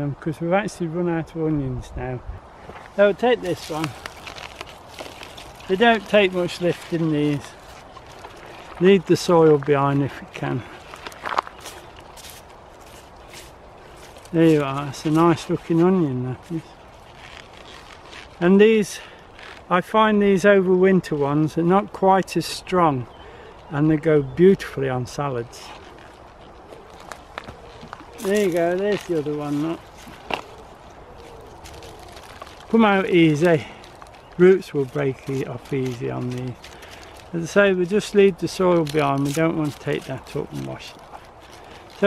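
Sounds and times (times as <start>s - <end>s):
low outdoor background noise: 0.0s - 42.0s
soil rustling off roots: 0.6s - 42.0s.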